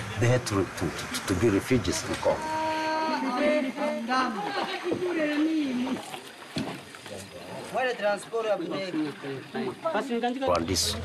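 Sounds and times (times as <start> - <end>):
loud speech: 0.2 - 6.0
men calling out: 2.0 - 6.2.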